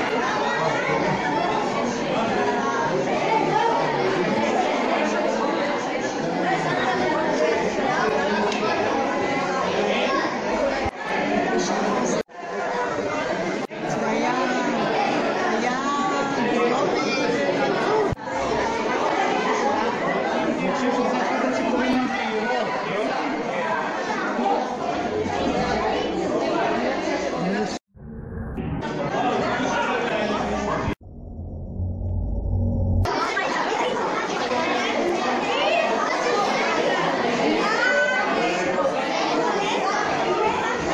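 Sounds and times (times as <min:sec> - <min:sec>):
overlapping chatter: 0:00.0 - 0:27.9, 0:28.6 - 0:31.0, 0:33.0 - 0:40.9.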